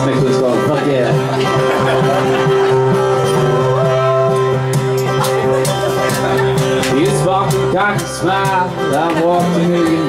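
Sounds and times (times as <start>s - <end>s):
folk band playing: 0.0s - 10.0s
washboard scraping rhythm: 0.2s - 10.0s.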